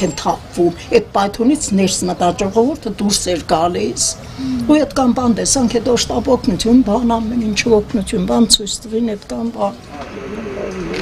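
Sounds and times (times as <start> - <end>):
woman speaking: 0.0 - 9.8.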